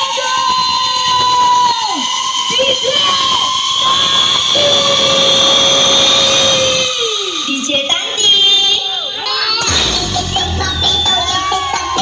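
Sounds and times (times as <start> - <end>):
loud electronic dance music: 0.0 - 12.0.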